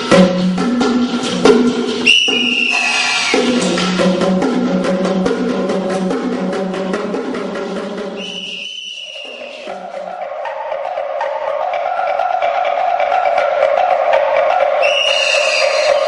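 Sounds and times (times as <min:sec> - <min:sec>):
percussion playing: 0:00.0 - 0:16.0
high whistle-like tone: 0:02.0 - 0:03.5, 0:08.2 - 0:09.7, 0:14.8 - 0:16.0.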